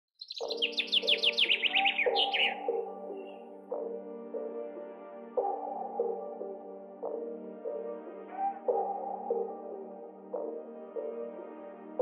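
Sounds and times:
songbird chirping: 0.1s - 11.9s
ambient music with held tones: 0.2s - 12.0s.

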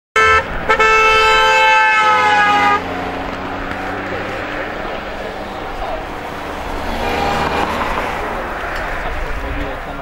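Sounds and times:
car horn: 0.2s - 3.3s
car engine driving away: 2.2s - 10.0s.

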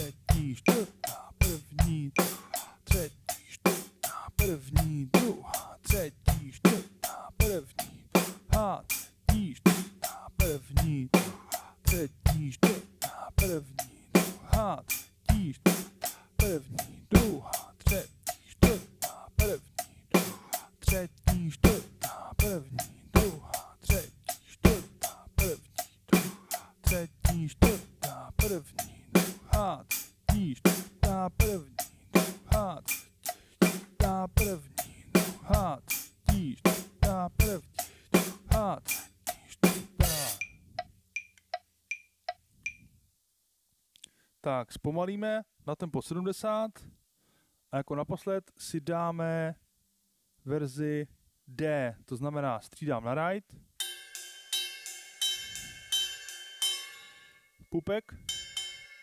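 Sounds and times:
acoustic drum kit playing: 0.0s - 40.5s, 53.8s - 57.3s, 58.3s - 59.0s
metronome clicks: 40.4s - 42.9s.

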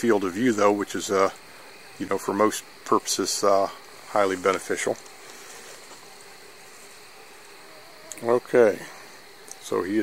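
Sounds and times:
light hiss: 0.0s - 10.0s
night insects chorus: 0.0s - 10.0s.

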